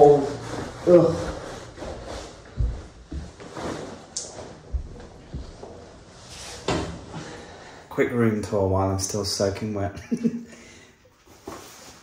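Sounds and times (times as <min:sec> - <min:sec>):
rain trousers rustling: 0:00.0 - 0:07.6
feet thumping on wooden floor: 0:00.6 - 0:07.2.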